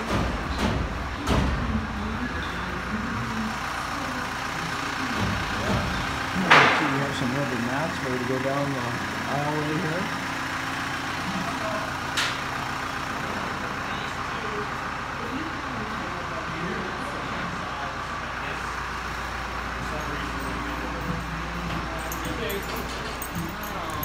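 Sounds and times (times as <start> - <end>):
engine humming: 0.0 - 24.0.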